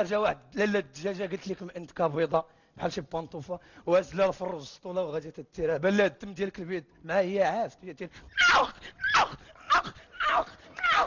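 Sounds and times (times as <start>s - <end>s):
man imitating dog yelps: 8.3s - 11.0s.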